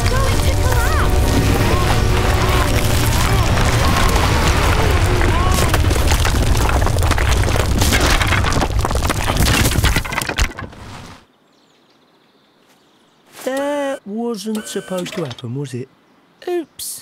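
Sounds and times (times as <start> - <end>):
cartoon earth collapsing rumble: 0.0 - 10.1.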